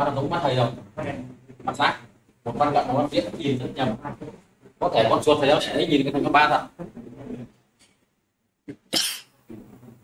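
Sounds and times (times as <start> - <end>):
person coughing: 8.9 - 9.3.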